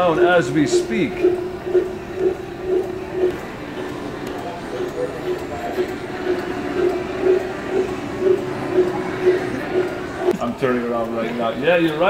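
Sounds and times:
mobility scooter pulsing tone: 0.0 - 10.4.

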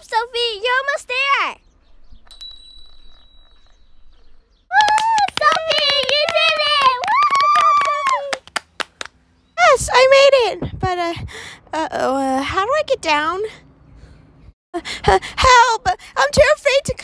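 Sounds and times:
high voice cheering: 4.7 - 8.4
hands clapping: 4.7 - 9.2.

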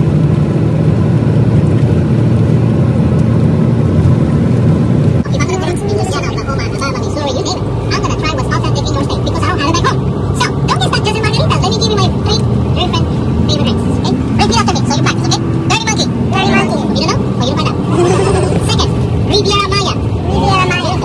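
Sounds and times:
bus engine and road rumble: 0.0 - 21.0
people chattering: 5.2 - 21.0.

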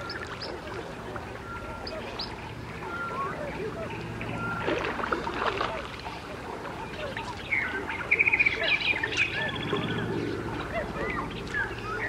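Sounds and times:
birds chirping and calling: 0.0 - 12.0
steady low hum: 0.0 - 12.0
bird trill: 1.4 - 4.8.

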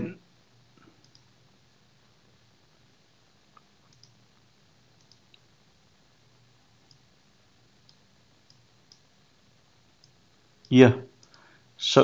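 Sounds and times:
faint computer mouse clicks: 0.8 - 1.3, 3.5 - 4.2, 5.0 - 5.4, 7.8 - 9.1, 10.0 - 10.2, 11.2 - 11.4.

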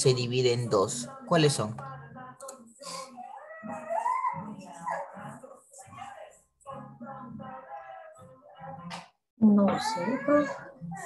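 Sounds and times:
dog whimpering: 3.4 - 5.2.

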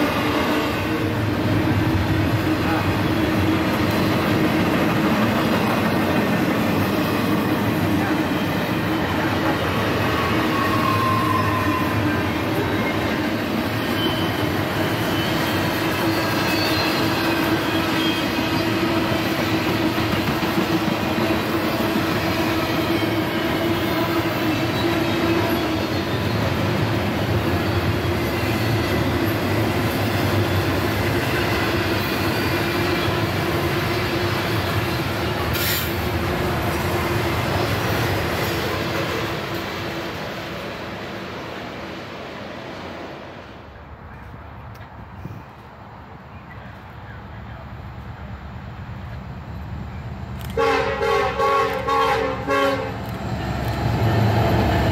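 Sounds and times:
train wheels rolling on rails: 0.0 - 54.9.

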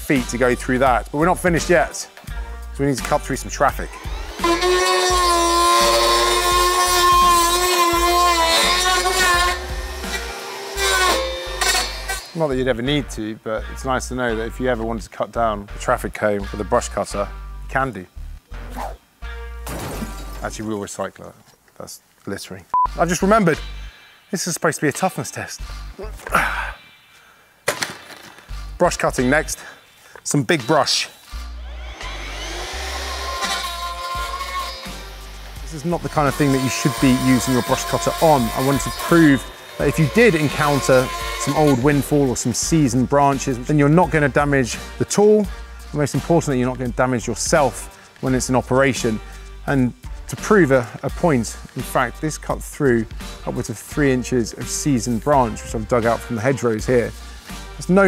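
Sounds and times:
background music with bass line: 0.0 - 20.6, 22.8 - 24.0, 25.6 - 26.8, 31.4 - 58.0
brush cutter blade whine: 3.1 - 12.4, 30.9 - 42.6.

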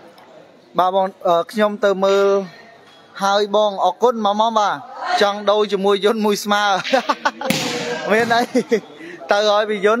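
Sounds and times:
volleyball slap: 7.5 - 8.3.

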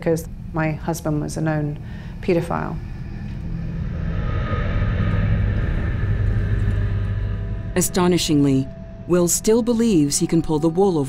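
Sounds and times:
loud low rumble: 2.3 - 10.1
faint held high tones: 2.8 - 11.0.

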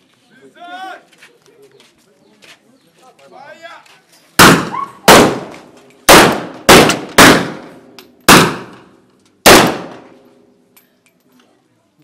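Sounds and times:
rifle shots with echo: 4.4 - 10.2.

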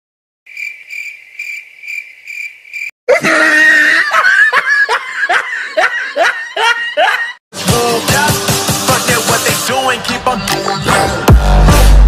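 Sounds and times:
cricket chirping: 0.5 - 2.9
burst of laughter: 3.1 - 7.4.

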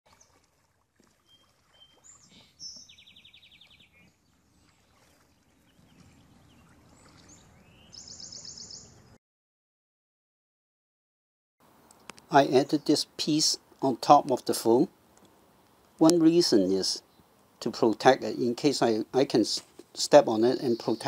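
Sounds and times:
small birds chirping and trilling: 1.2 - 9.2, 20.4 - 21.0
faint low background noise: 11.6 - 21.0.

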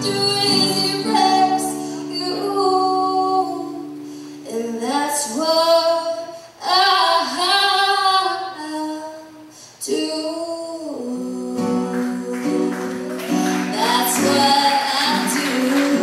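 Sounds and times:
woman singing with vibrato: 0.0 - 16.0.

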